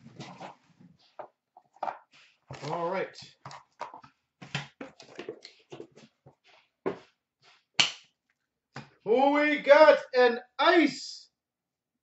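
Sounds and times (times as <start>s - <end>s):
hands handling cardboard and cards: 0.1s - 8.1s.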